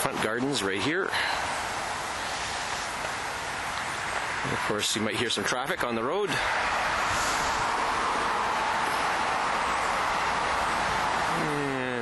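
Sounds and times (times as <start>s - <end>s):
road traffic tyre hiss: 0.0s - 12.0s.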